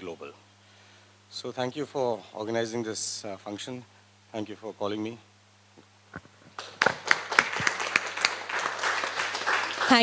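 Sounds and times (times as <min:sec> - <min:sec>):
audience applauding: 0:06.6 - 0:10.0.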